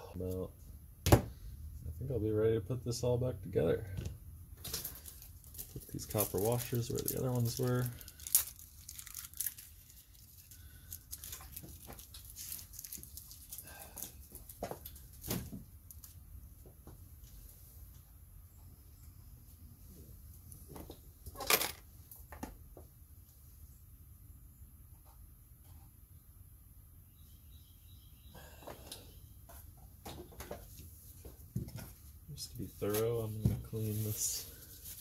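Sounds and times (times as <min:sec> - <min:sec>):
small parts clicking and rustling: 0:04.6 - 0:16.2.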